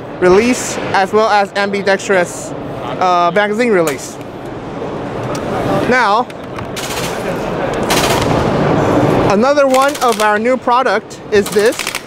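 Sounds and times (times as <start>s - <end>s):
busy exhibition hall noise: 0.0s - 12.0s
rapid airsoft gunfire: 6.8s - 8.6s, 9.7s - 10.4s, 11.4s - 12.0s.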